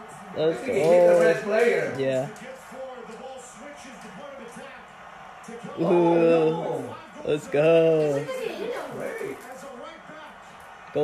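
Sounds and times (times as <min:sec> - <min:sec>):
commentator's voice: 0:00.0 - 0:11.0
crowd noise: 0:00.0 - 0:11.0.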